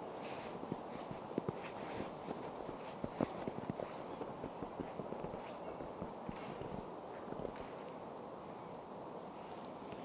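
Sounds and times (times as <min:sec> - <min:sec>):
footsteps in snow: 0:00.2 - 0:07.8.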